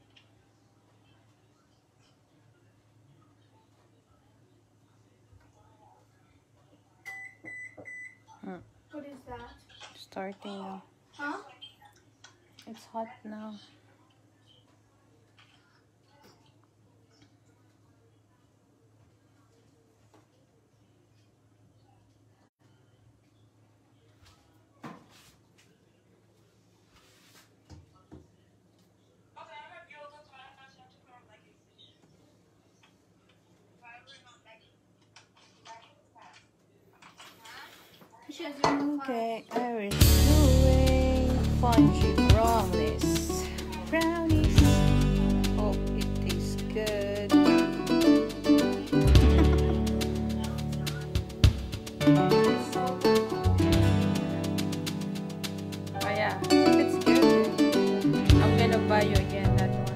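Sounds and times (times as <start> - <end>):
person speaking: 39.9 - 59.9.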